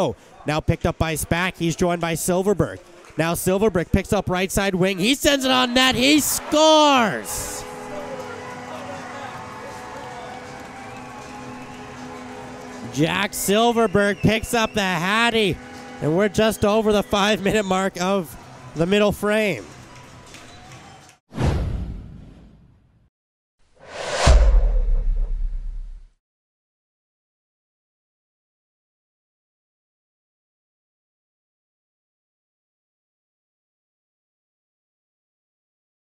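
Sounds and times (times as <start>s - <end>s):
crowd cheering: 4.7s - 21.2s
goal horn: 5.5s - 17.4s
rising whoosh: 23.8s - 26.0s
deep rumbling boom: 24.1s - 26.1s.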